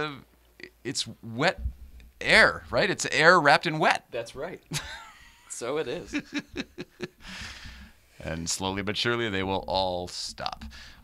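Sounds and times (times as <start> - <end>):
person laughing: 4.7 - 7.5
breathy exhale: 7.2 - 8.2, 10.7 - 11.0.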